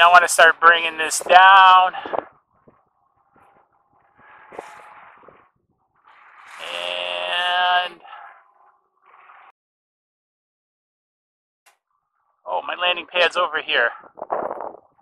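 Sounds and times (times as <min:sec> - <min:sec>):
man making drawn-out wordless sound: 0:00.0 - 0:02.2, 0:06.6 - 0:08.1.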